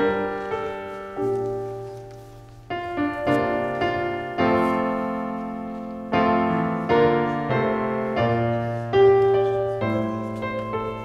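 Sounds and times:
piano playing slow hymn: 0.0 - 11.0.

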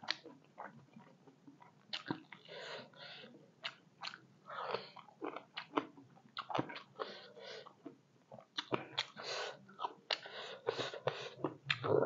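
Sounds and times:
mouth clicks and smacks: 0.0 - 2.5, 8.3 - 9.2, 9.8 - 12.0
person chewing food: 0.0 - 12.0.

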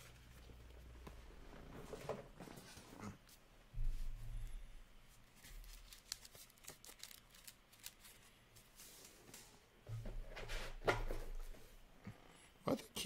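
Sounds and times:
cards rustling: 5.3 - 9.4.

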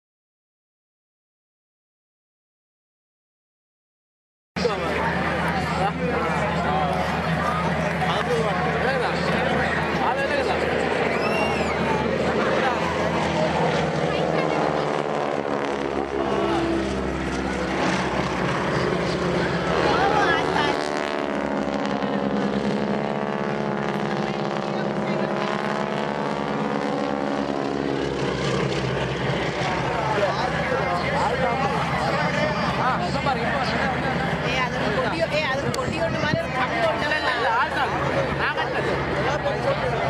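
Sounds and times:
biplane engines droning: 4.6 - 40.0.

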